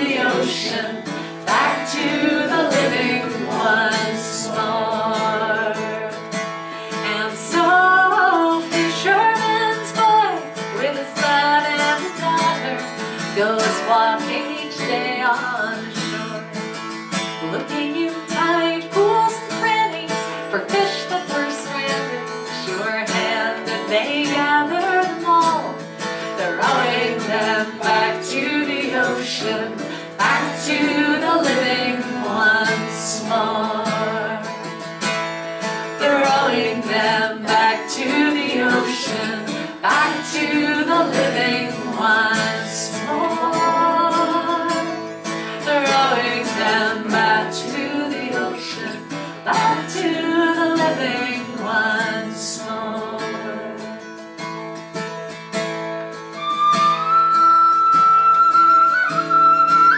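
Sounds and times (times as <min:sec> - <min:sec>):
woman singing: 0:00.0 - 0:16.5, 0:17.4 - 0:34.7, 0:35.9 - 0:54.0
acoustic guitar strummed and plucked: 0:00.0 - 0:59.9.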